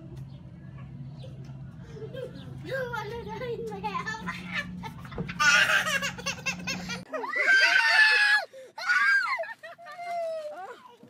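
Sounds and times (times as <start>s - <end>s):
people shrieking and laughing: 4.3s - 11.0s.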